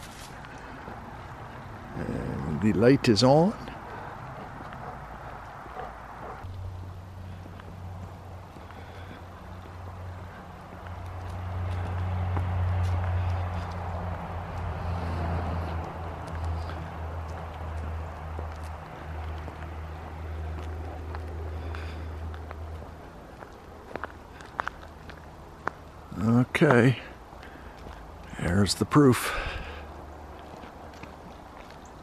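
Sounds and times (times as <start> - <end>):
footsteps on asphalt: 0.0 - 32.0.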